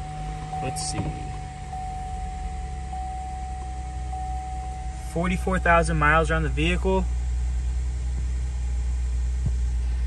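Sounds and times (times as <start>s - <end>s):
car engine idling: 0.0s - 10.0s
low rumble and hiss: 0.0s - 10.0s.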